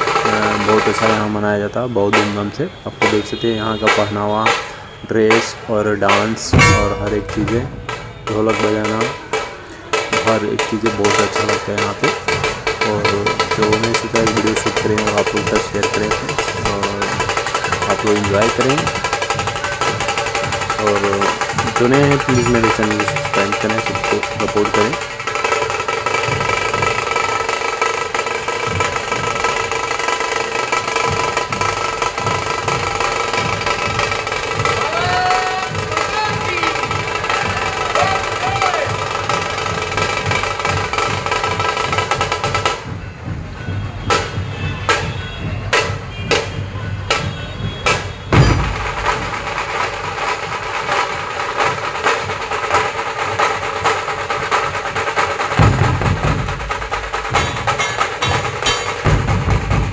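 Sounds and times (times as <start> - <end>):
barrel drums beaten in rhythm: 0.0 - 1.4, 2.1 - 59.9
steady held pitched tones: 6.3 - 8.9.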